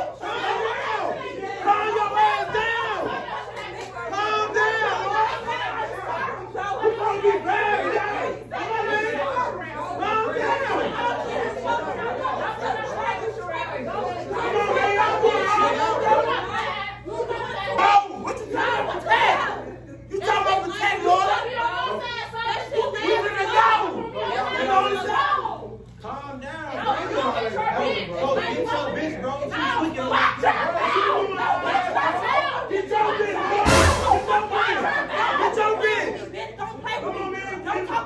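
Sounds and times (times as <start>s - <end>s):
overlapping party chatter: 0.0s - 38.0s
people talking loudly over one another: 0.0s - 38.0s.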